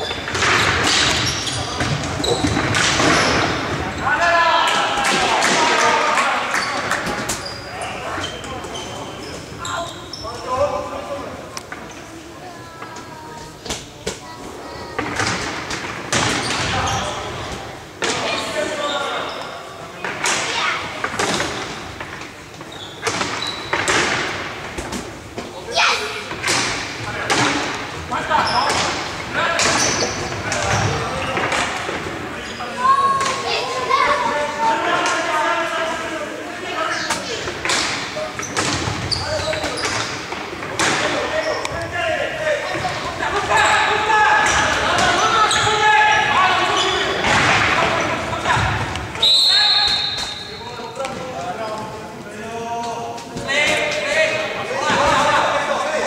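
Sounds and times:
players' voices calling: 25.2s - 56.0s
referee's whistle blast: 49.2s - 50.5s.

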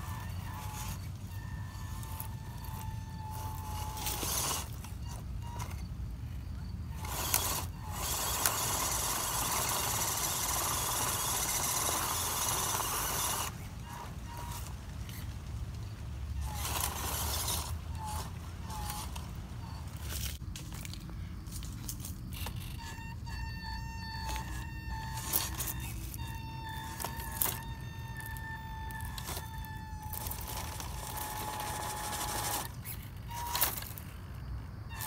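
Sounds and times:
toy car electric motor whining: 0.0s - 15.3s, 15.9s - 20.4s, 21.9s - 35.0s
rough drivetrain noise: 0.0s - 35.0s.

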